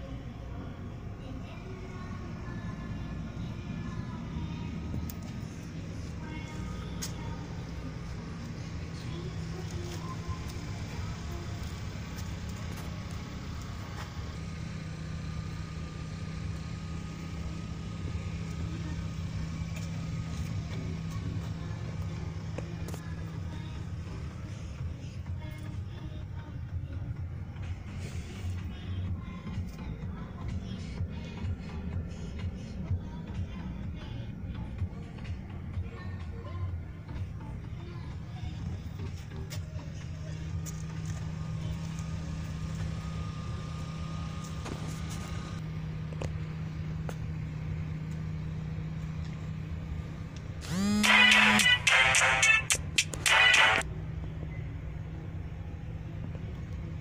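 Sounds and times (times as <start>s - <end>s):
car cabin hum: 0.0s - 14.3s, 17.4s - 51.4s
faint music: 0.0s - 57.0s.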